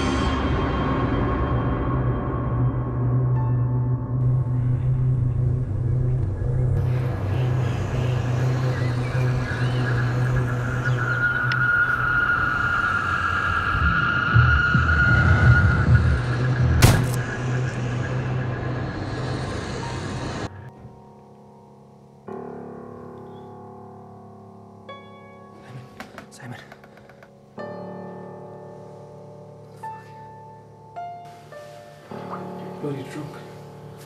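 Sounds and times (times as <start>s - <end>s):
high eerie tone: 0.0s - 20.7s
low rumbling drone: 0.0s - 20.7s
sharp crack: 16.8s - 17.9s.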